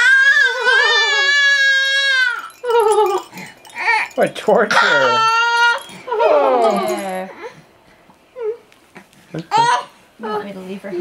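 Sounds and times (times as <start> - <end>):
baby crying: 0.0 - 7.6, 9.4 - 10.0.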